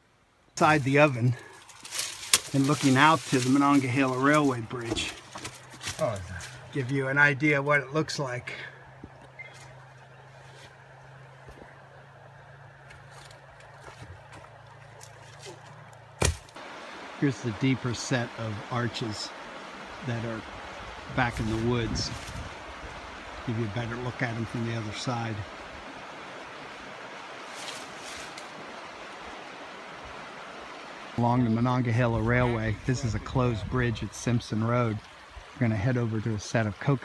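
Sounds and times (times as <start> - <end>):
creek water running: 0.0 - 37.0.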